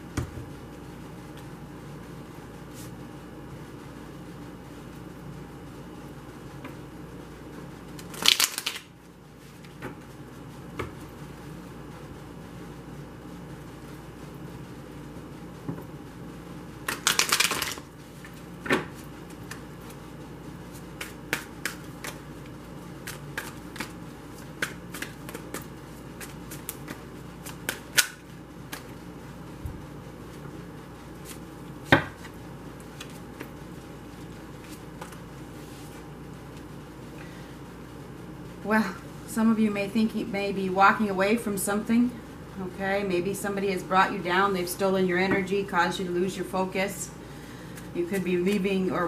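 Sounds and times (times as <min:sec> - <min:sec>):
cards being shuffled: 0:08.0 - 0:08.9, 0:16.9 - 0:18.4, 0:20.7 - 0:29.0, 0:32.2 - 0:33.5, 0:34.2 - 0:36.0
cards tapping: 0:21.0 - 0:22.2, 0:23.0 - 0:28.9.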